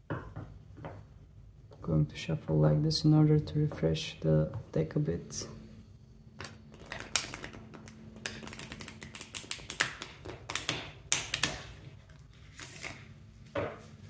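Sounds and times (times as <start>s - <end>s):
cards being shuffled: 6.4s - 13.9s.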